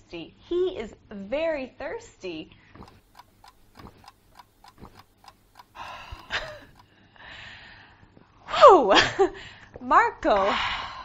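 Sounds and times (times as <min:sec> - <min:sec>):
clock ticking quickly: 0:02.8 - 0:06.9.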